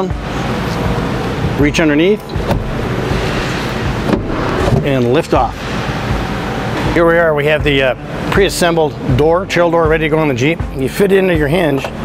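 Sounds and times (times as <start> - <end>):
car door latch clicking: 2.3 - 3.0.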